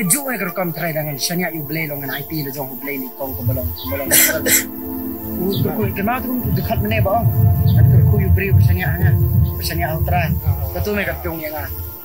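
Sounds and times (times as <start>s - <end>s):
man speaking: 0.0s - 4.7s, 5.4s - 11.7s
soft background music: 0.0s - 12.0s.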